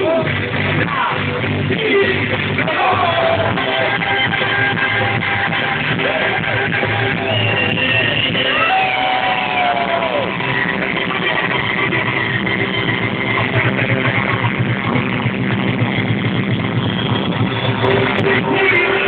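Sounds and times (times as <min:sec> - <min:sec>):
live band playing amplified music: 0:00.0 - 0:19.0.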